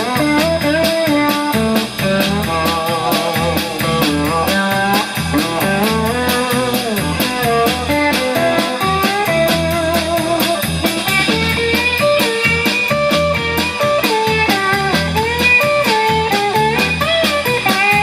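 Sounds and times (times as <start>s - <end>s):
drums keeping a steady beat: 0.0s - 18.0s
electric bass: 0.0s - 18.0s
electric guitar lead line: 0.0s - 18.0s.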